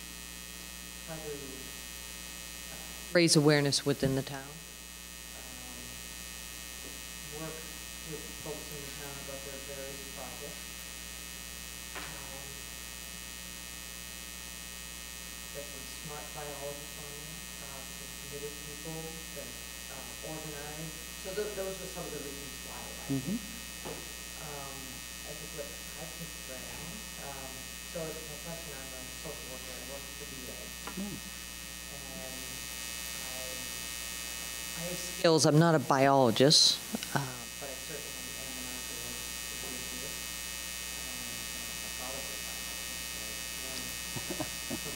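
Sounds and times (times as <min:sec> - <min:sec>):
electrical mains hum: 0:00.0 - 0:44.9
microphone hiss: 0:00.0 - 0:44.9
faint voice murmurs: 0:21.5 - 0:23.5, 0:24.4 - 0:31.3.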